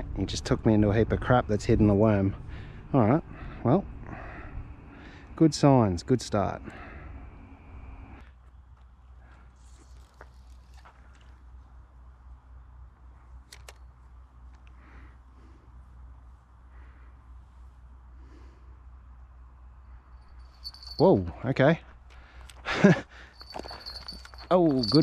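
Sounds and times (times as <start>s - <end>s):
wind rumble on microphone: 0.0s - 4.8s
small clicks: 13.5s - 13.9s
bite bell jingling: 20.1s - 21.5s, 23.2s - 25.0s
faint rustles: 22.0s - 25.0s.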